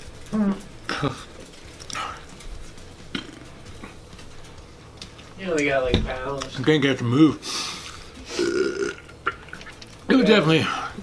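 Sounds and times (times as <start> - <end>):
man belching: 3.1 - 3.5, 8.3 - 9.4.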